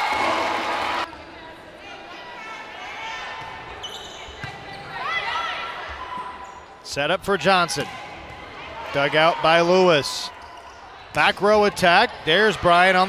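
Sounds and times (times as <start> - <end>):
crowd and player voices: 0.0 - 13.0
sneakers squeaking on hardwood: 3.4 - 5.2.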